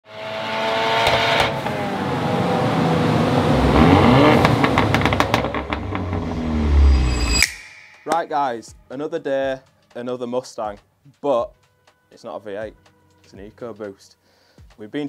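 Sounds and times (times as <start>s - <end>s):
car engine revving: 0.1s - 7.5s
exhaust popping and crackling: 3.5s - 7.0s.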